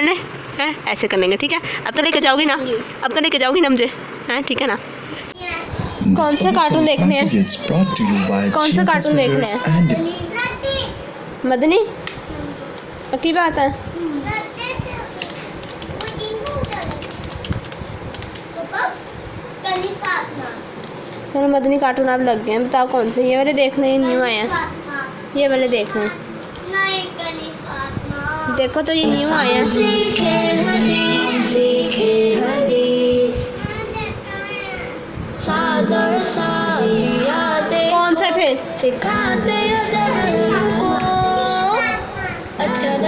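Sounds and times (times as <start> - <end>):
child's voice: 5.4 - 11.1, 13.9 - 17.2, 18.6 - 20.6, 24.0 - 25.2, 25.8 - 31.5, 33.4 - 35.0, 39.8 - 42.8
child singing over music: 29.1 - 33.7, 35.7 - 43.0.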